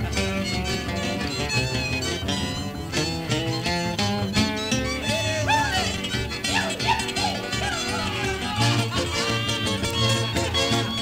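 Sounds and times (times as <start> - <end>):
country string band instrumental: 0.0 - 11.0
guitar playing: 0.0 - 11.0
sliding notes: 0.0 - 11.0.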